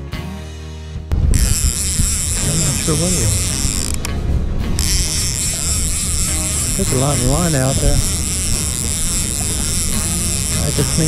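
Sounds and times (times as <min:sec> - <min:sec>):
fishing reel ratchet clicking: 0:01.3 - 0:04.2, 0:04.8 - 0:11.0.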